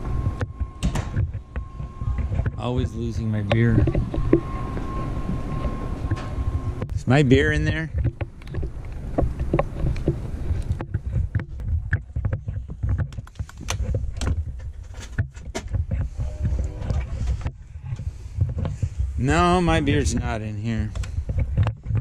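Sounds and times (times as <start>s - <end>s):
low rumbling wind: 0.0s - 22.0s
knocks and clicks: 0.2s - 18.9s.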